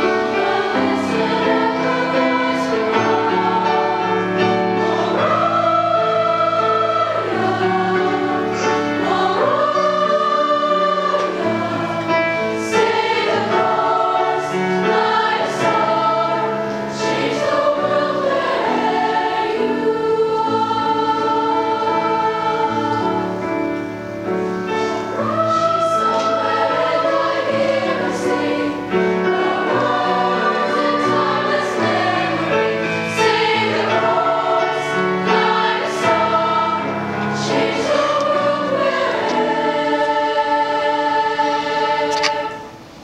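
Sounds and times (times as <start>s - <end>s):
girls' choir singing: 0.0s - 43.0s.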